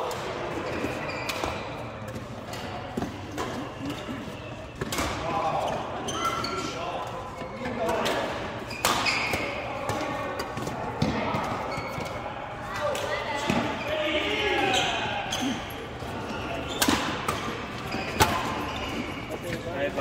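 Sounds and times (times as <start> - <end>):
players chattering: 0.0 - 20.0
racket hitting shuttlecock: 7.9 - 12.1, 16.8 - 18.6.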